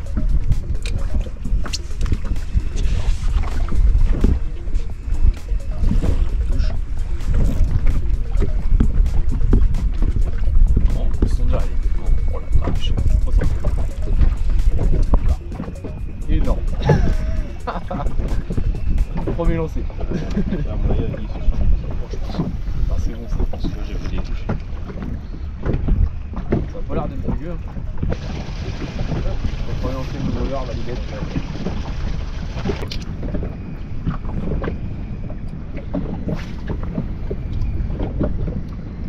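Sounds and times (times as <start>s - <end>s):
water moving against hull: 0.0s - 39.0s
wind rumbling on microphone: 0.0s - 39.0s.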